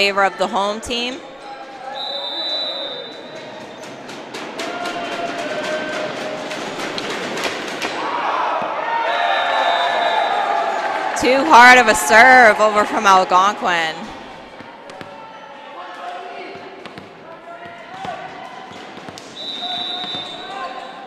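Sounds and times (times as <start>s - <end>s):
players and spectators voices: 0.0s - 21.0s
volleyball bouncing: 11.4s - 15.2s, 16.5s - 20.8s
volleyball struck sharp knocks: 16.8s - 20.3s.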